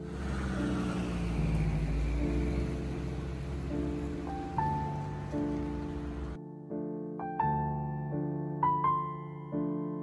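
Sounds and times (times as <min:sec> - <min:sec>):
car engine hum: 0:00.0 - 0:06.4
road noise hiss: 0:00.0 - 0:06.4.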